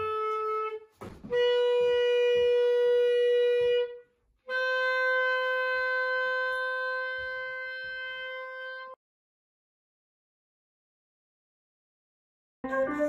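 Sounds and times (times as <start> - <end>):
solo clarinet long held notes: 0.0 - 9.0.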